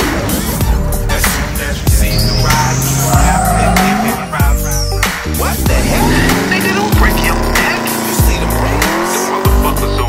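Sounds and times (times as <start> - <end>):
background music: 0.0 - 10.0
pickup truck engine and tyres: 0.0 - 10.0.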